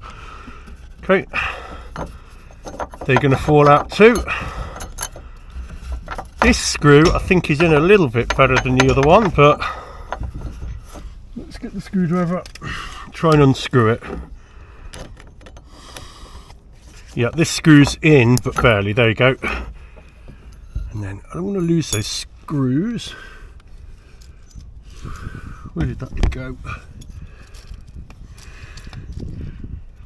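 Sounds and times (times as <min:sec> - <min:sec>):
handling noise: 0:00.0 - 0:22.2
low steady background noise: 0:00.0 - 0:30.0.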